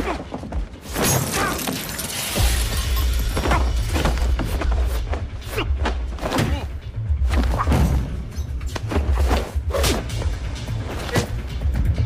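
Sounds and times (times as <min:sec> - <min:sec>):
action music with heavy bass: 0:01.8 - 0:12.0.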